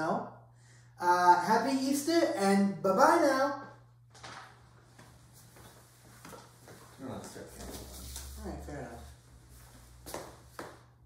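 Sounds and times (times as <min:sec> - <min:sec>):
low steady room hum: 0:00.0 - 0:11.0
faint footsteps: 0:04.2 - 0:11.0.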